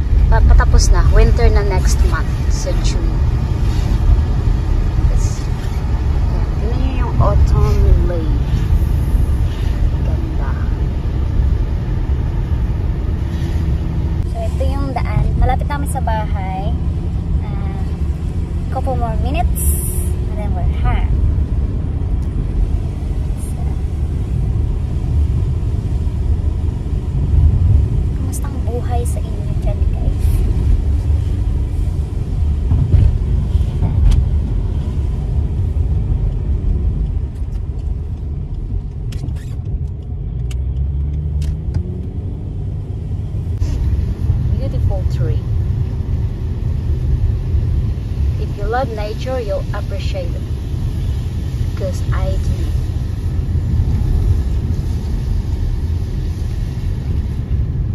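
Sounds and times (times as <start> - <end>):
car road noise and engine rumble: 0.0 - 57.9
person speaking: 6.4 - 8.5.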